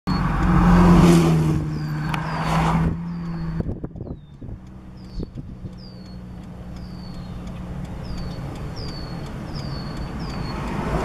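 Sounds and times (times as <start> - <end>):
vehicle engine and road noise: 0.0 - 11.0.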